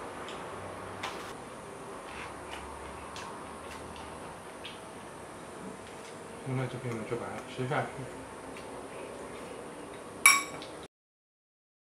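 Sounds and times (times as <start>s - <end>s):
metal spoon clinking glass bowl: 10.3s - 10.6s.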